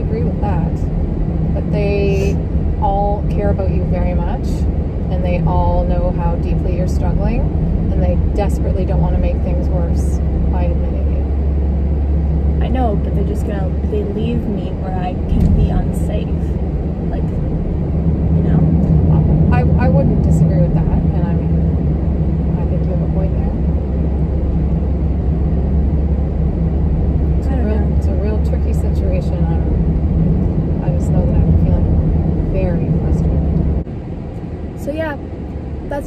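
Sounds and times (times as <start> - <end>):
car road and wind rumble: 0.0 - 36.0
low hum: 0.0 - 36.0.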